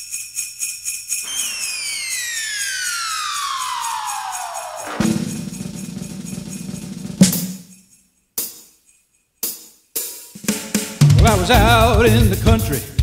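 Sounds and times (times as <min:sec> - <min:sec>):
falling whistle: 0:01.3 - 0:06.2.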